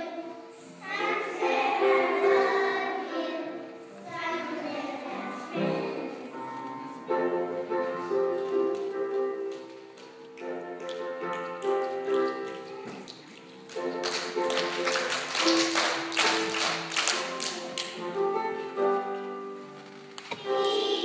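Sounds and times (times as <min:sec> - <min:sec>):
children singing: 0:00.0 - 0:08.4, 0:20.3 - 0:21.0
musical accompaniment: 0:00.0 - 0:21.0.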